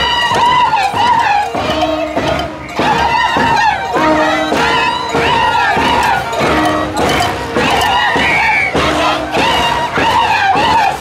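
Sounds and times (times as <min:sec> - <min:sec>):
hand drums beaten with sticks: 0:00.0 - 0:11.0
women singing high-pitched song: 0:00.0 - 0:11.0.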